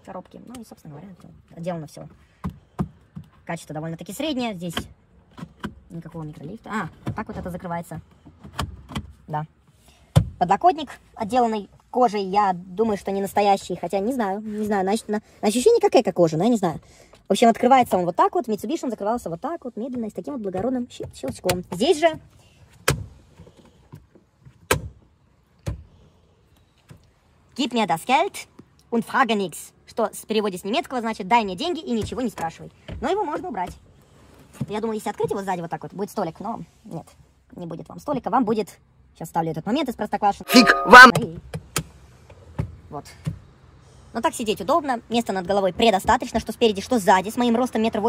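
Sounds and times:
person speaking a word: 40.5s - 41.2s.

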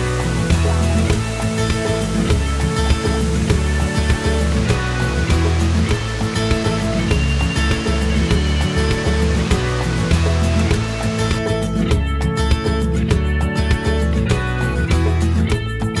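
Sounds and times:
instrumental music with steady beat: 0.0s - 16.0s.

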